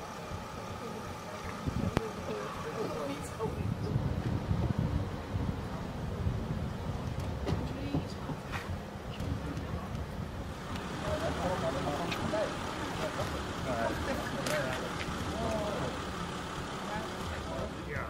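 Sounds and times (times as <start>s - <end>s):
faint voices talking: 0.0s - 6.6s, 7.4s - 18.0s
vehicle engine rumbling: 0.0s - 18.0s.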